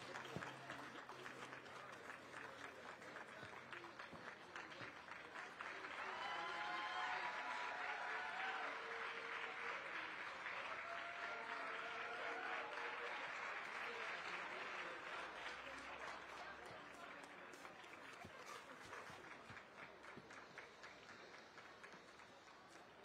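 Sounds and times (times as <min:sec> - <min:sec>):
audience applauding: 0:00.0 - 0:23.0.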